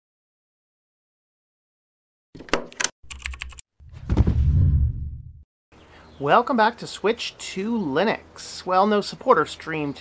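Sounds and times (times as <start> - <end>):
rapid keyboard typing clicks: 2.7 - 3.6
loud deep sound effect: 3.9 - 5.4.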